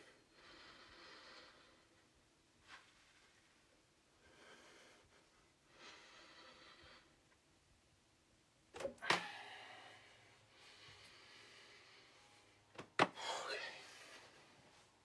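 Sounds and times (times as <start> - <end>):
heavy breathing: 9.1 - 14.8.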